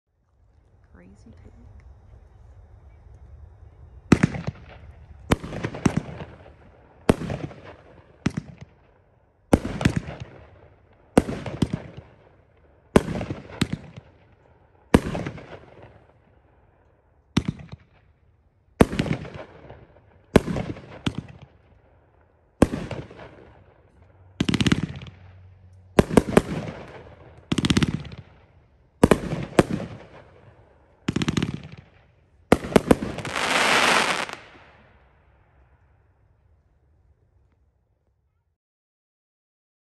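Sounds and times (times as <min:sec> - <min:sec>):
fireworks cake firing: 0:01.5 - 0:08.9, 0:09.5 - 0:16.3, 0:18.7 - 0:21.8, 0:22.6 - 0:35.0
dense rapid firework crackle: 0:02.2 - 0:18.2, 0:18.8 - 0:22.0, 0:22.6 - 0:35.8.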